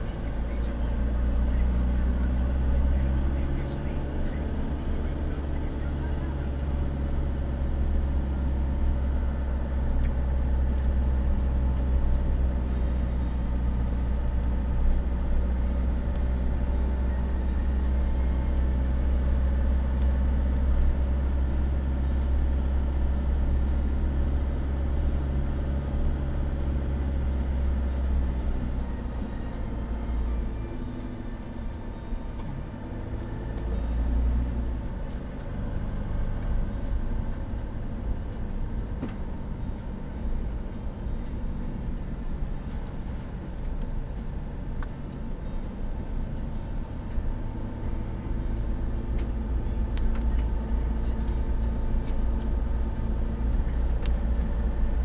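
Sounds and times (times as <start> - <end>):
car engine and tyre noise: 0.0 - 55.0.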